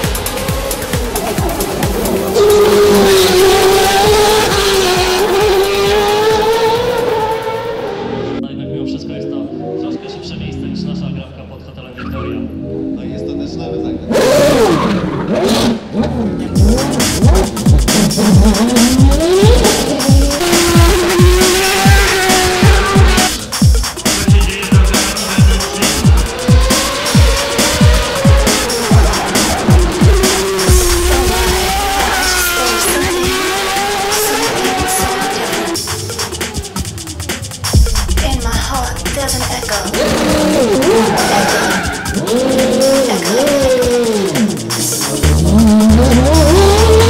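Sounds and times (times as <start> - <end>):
racing car engine revving: 0.0 - 8.4, 14.0 - 47.0
drum and bass music: 0.0 - 9.0, 13.4 - 47.0.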